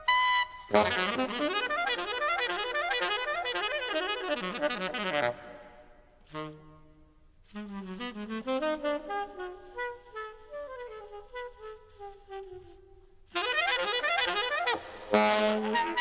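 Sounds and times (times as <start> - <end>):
big band horn section: 13.4 - 16.0
solo horn fast line: 13.4 - 16.0.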